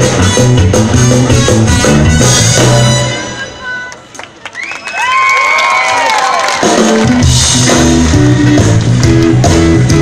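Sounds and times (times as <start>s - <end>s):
blues band playing: 0.0s - 3.4s, 6.6s - 10.0s.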